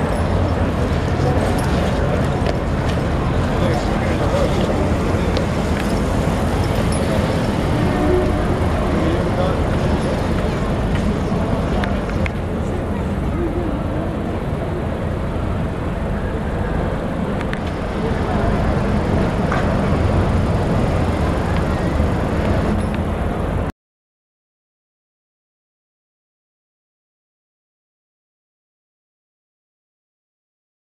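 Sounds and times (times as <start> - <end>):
indistinct voices of passers-by: 0.0 - 23.7
traffic rumble: 0.0 - 23.7.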